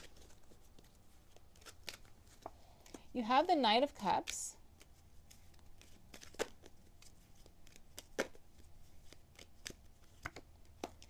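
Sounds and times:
cards being shuffled: 0.0 - 3.1, 3.9 - 11.0
sharp clicks of cards: 9.0 - 11.0.

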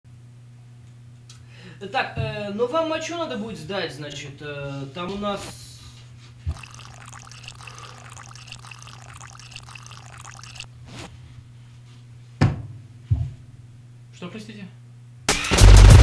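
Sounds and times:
liquid pouring and trickling: 6.5 - 10.7.

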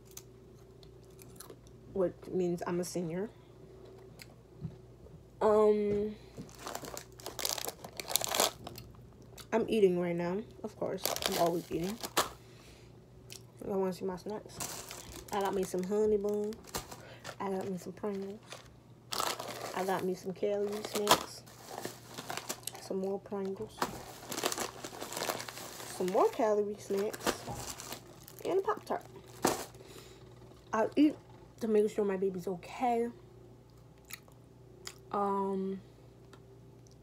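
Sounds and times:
plastic wrapper crinkling: 6.4 - 8.9, 10.9 - 12.4, 14.4 - 29.9.

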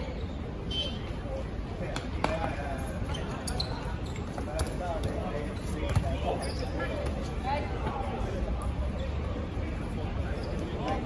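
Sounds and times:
balls thudding on hard court: 5.8 - 6.3.

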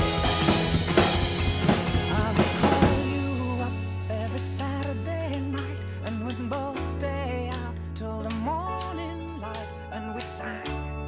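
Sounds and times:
drum kit and cymbals: 0.0 - 4.7
steady bass: 0.0 - 9.7
recorded pop song: 0.0 - 11.0
man singing: 1.6 - 11.0.

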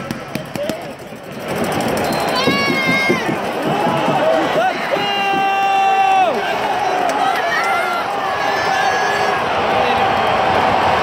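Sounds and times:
stadium crowd cheering: 0.0 - 11.0
fan shouting: 0.2 - 11.0
long high shout: 3.9 - 10.0.

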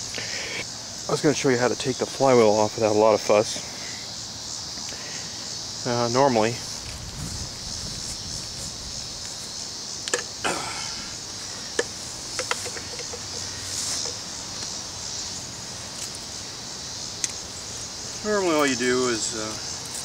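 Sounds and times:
insects chirring in grass: 0.0 - 20.0
clicks and knocks handling engine: 11.8 - 14.2.

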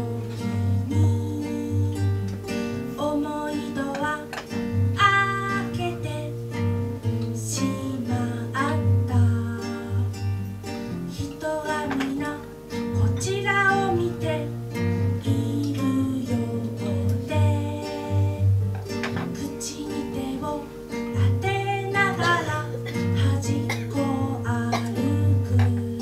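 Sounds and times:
acoustic guitar: 0.0 - 26.0
woman singing: 0.0 - 26.0.

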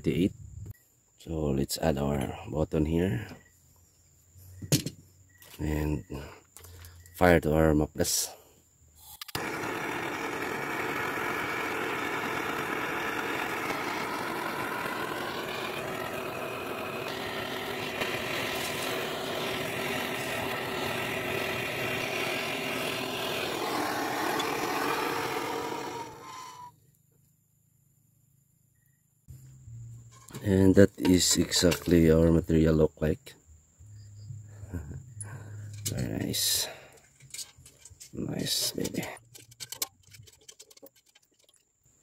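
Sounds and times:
gas torch flame burning: 9.2 - 26.7.

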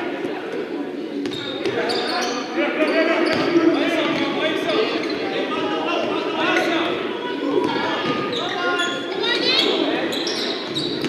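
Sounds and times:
echoing voices: 0.0 - 11.0
sneakers squeaking: 1.0 - 11.0.

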